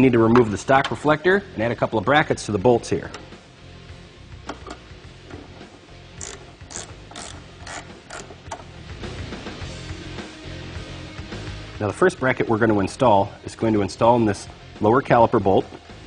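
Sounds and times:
quiet background music: 0.0s - 16.0s
ratchet wrench clicking: 6.1s - 8.7s.

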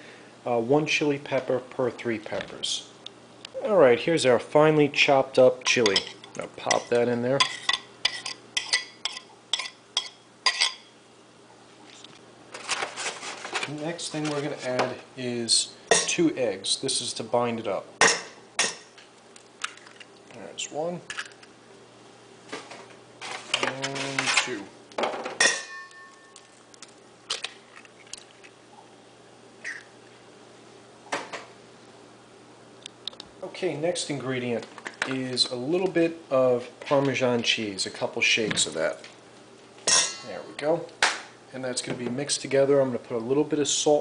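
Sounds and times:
metal bowl ringing: 25.4s - 26.5s, 39.9s - 40.4s.

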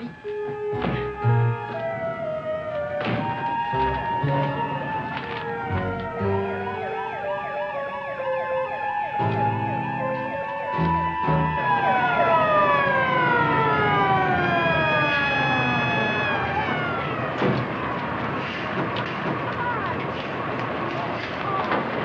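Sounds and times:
fire engine siren winding down: 0.0s - 18.1s
sharp knocks: 0.8s - 1.3s.

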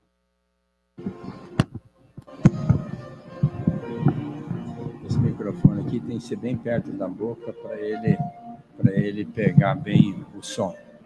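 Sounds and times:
microphone handling knocks: 1.0s - 6.9s, 8.0s - 10.2s
muffled voices: 2.5s - 10.8s.

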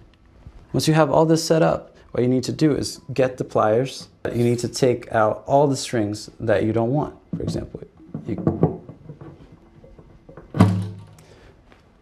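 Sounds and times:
thunk on guitar bridge: 10.0s - 11.2s.

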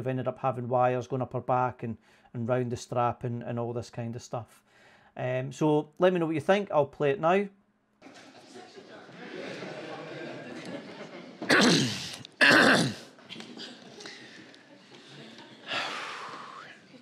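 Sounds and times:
person breathing out heavily: 15.6s - 16.8s.

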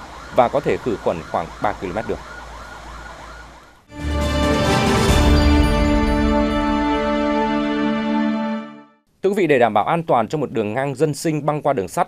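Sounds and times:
siren in fast yelp mode: 0.0s - 3.9s.

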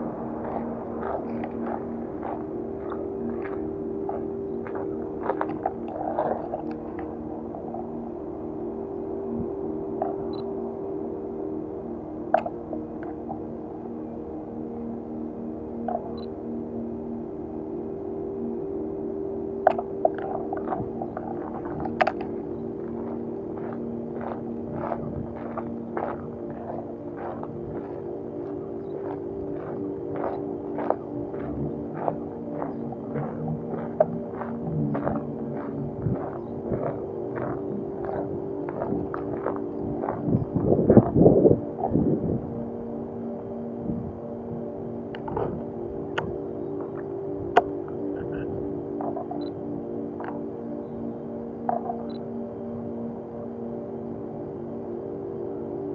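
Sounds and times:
ambient background music: 0.0s - 55.9s
footsteps crunching on gravel: 0.3s - 7.1s, 22.9s - 40.4s
loud rumble: 20.6s - 42.6s.

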